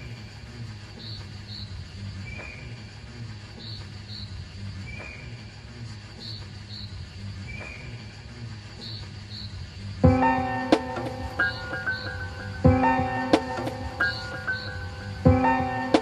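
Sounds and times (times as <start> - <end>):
low drone: 9.8 - 16.0
high chirps and blips: 10.0 - 16.0.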